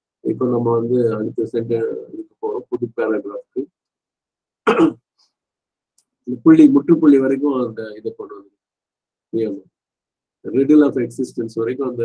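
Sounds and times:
man speaking: 0:00.3 - 0:03.7, 0:06.3 - 0:08.5, 0:09.3 - 0:09.7, 0:10.5 - 0:12.0
man clearing throat: 0:04.7 - 0:05.0.

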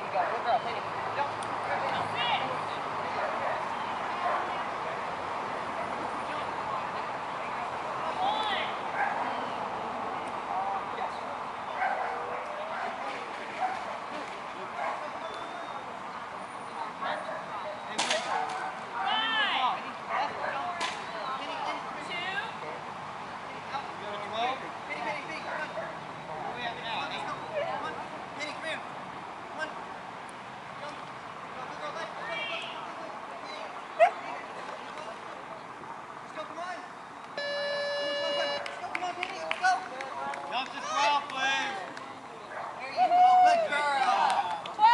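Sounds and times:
people's voices: 0:00.0 - 0:44.9
dog barking: 0:03.2 - 0:04.5, 0:09.0 - 0:09.3, 0:11.8 - 0:13.0, 0:13.6 - 0:14.0, 0:14.8 - 0:15.1, 0:17.0 - 0:17.6, 0:18.2 - 0:19.2, 0:20.1 - 0:20.7, 0:25.4 - 0:26.6, 0:42.5 - 0:42.8.

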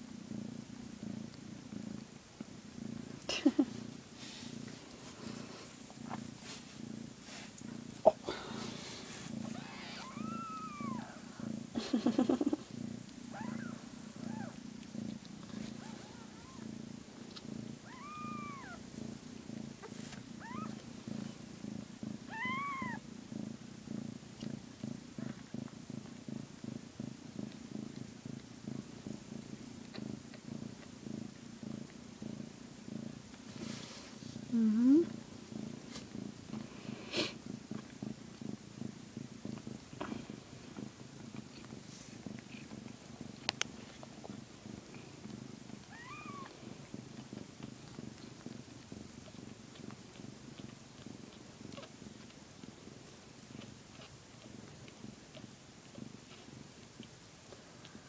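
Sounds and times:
cat purring: 0:00.0 - 0:58.0
kittens squeaking: 0:09.5 - 0:11.2, 0:17.8 - 0:18.8, 0:22.3 - 0:23.0
rising kitten call: 0:09.6 - 0:11.2.

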